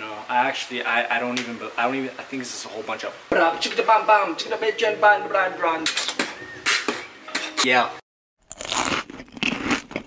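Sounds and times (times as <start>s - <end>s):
crunchy chewing of food: 8.4s - 10.0s.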